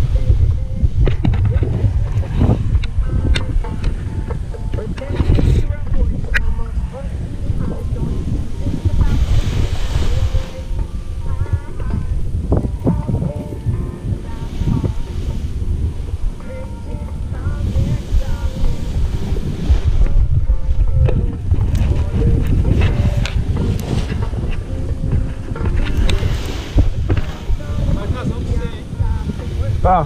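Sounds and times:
faint voices: 0:00.0 - 0:30.0
wind buffeting microphone: 0:00.0 - 0:30.0.

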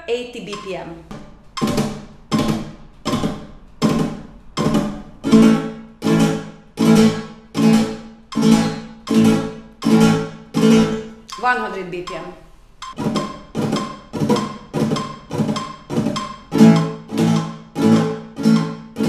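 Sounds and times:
flamenco guitar strums: 0:00.1 - 0:19.0.

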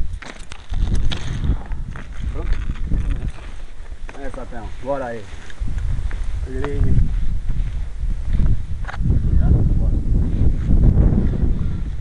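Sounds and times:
low rumble on microphone: 0:00.0 - 0:04.8, 0:05.5 - 0:12.0.

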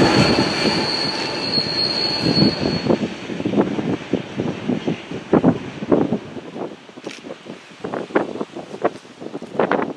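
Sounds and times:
wind buffeting microphone: 0:02.2 - 0:09.9.

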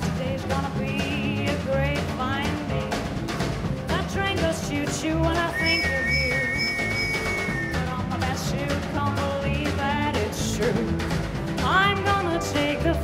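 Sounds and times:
walking bass line: 0:00.0 - 0:11.0.

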